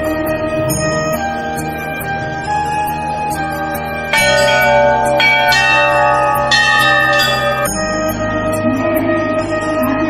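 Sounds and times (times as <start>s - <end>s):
brass bell ringing: 4.2s - 8.1s.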